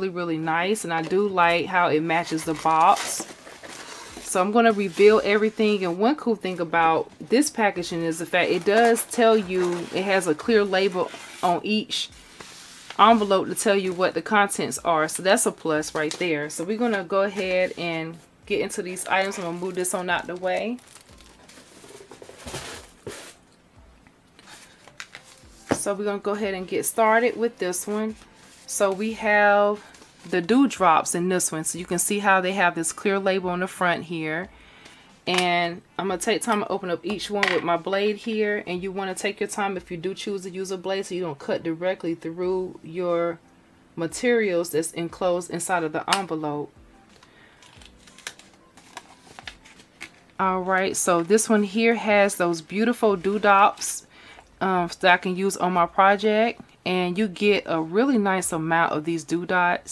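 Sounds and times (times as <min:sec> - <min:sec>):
paper envelope rustling: 0:02.2 - 0:05.5, 0:19.1 - 0:23.4, 0:24.4 - 0:25.7, 0:47.1 - 0:51.4
cardboard box and tissue paper rustling: 0:02.2 - 0:05.7, 0:08.4 - 0:10.1, 0:19.1 - 0:23.4.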